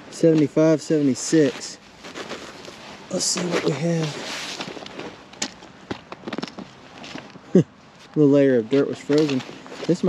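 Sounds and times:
frozen soil crunching under boot: 0.0s - 10.0s
person laughing: 7.5s - 7.7s.

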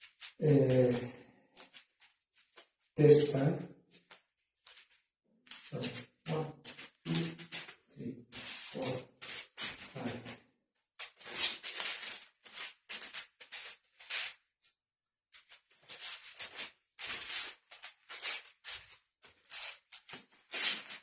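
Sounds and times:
bare feet sliding on mat: 6.7s - 10.4s.

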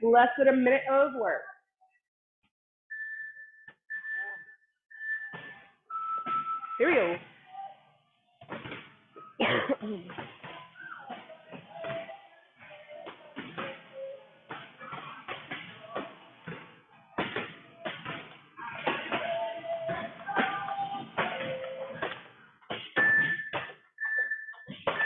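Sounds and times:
song with vocals and beat: 10.5s - 22.5s.

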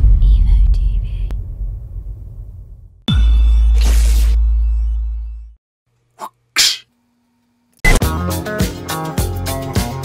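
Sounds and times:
deep bass rumble: 0.0s - 5.6s
person sneezing: 6.2s - 6.9s.

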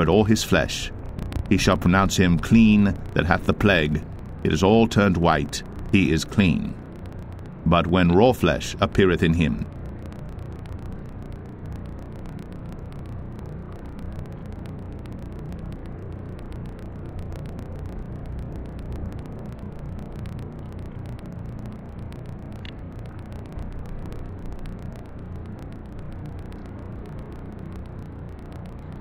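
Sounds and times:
rainfall rumble: 0.0s - 29.0s.

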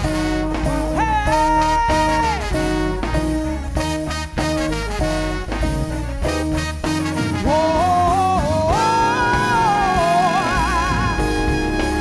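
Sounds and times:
soul-jazz band playing: 0.0s - 12.0s.

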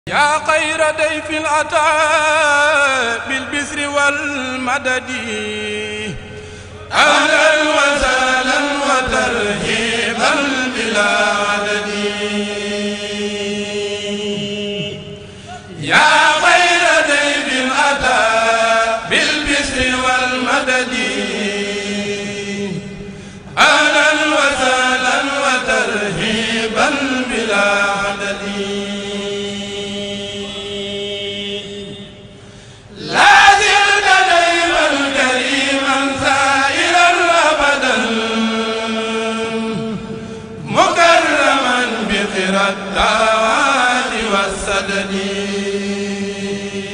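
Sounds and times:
person chanting verse: 6.9s - 32.2s, 32.9s - 46.9s.

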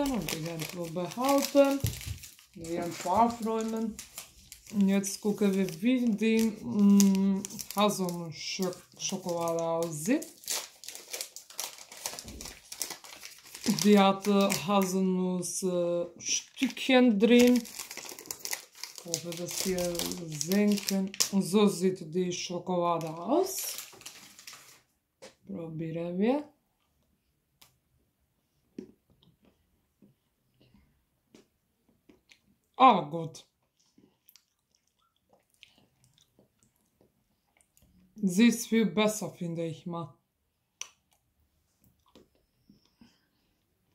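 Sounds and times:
person speaking: 0.0s - 10.6s, 13.5s - 17.9s, 18.9s - 23.9s
wrapper crinkling: 0.0s - 15.0s, 16.3s - 21.8s, 22.9s - 24.9s
soft chewing mouth clicks: 33.6s - 38.1s, 40.8s - 43.0s.

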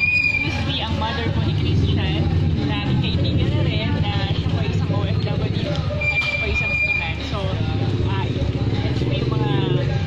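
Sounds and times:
woman talking: 0.3s - 9.9s.

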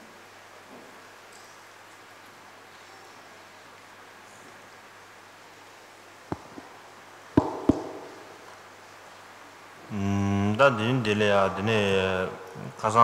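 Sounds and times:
low hiss: 0.0s - 13.0s
microphone stand knocks and bumps: 7.4s - 8.1s
man speaking: 9.9s - 13.0s.

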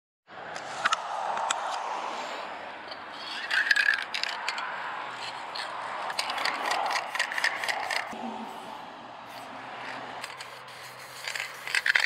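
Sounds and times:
spray can ball rattling: 3.2s - 4.6s, 5.2s - 8.2s, 9.3s - 12.0s.

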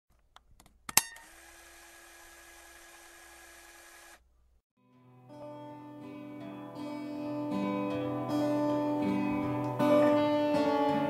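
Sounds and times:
disk drive whirring: 0.9s - 4.6s.

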